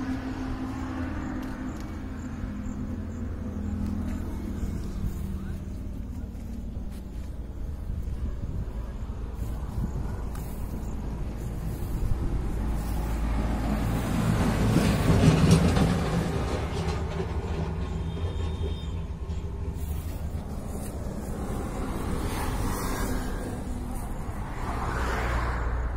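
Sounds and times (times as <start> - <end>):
heavy vehicle engine passing: 0.0 - 25.9
road traffic rumbling: 0.0 - 25.9.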